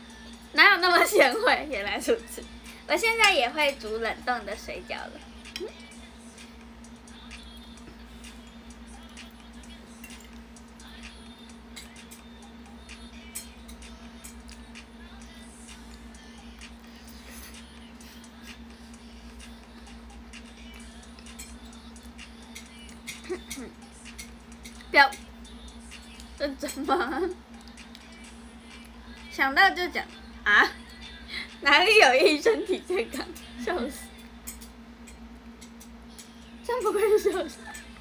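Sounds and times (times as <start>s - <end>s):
low electrical hum: 0.0s - 38.0s
fork clicking against a plate: 10.0s - 10.4s, 13.3s - 14.6s, 22.5s - 25.3s, 34.2s - 36.4s.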